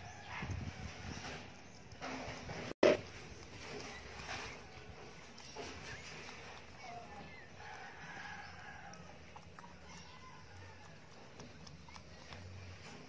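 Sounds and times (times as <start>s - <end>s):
puppy squeaking: 3.4s - 13.0s.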